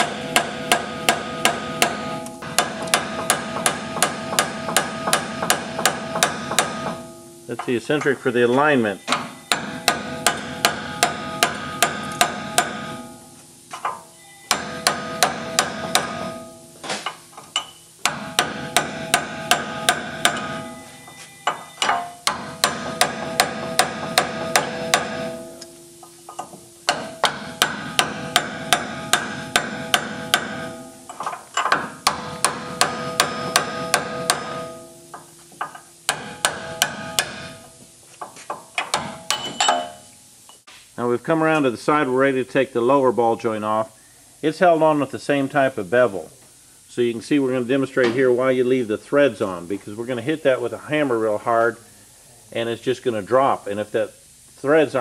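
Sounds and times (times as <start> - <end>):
chisel hammering metal on metal: 0.0 - 7.8, 9.1 - 13.2, 13.9 - 16.6, 17.6 - 20.8, 21.5 - 25.7, 26.3 - 37.6, 38.5 - 40.0.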